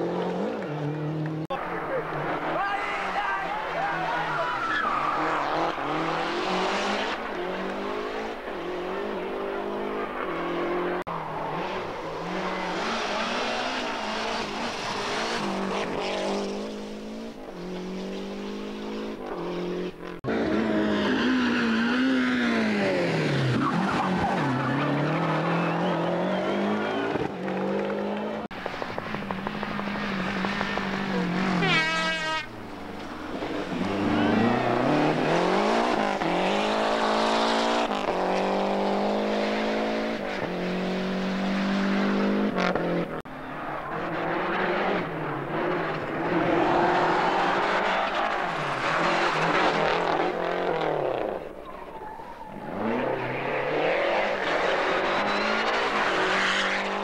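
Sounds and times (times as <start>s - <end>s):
rally car engine revving: 0.0s - 51.8s, 52.5s - 57.0s.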